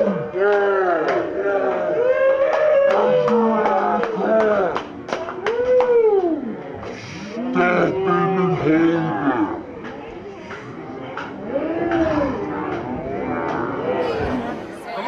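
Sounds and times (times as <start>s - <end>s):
men hollering whoops: 0.0s - 4.8s
crowd chatter: 2.9s - 15.0s.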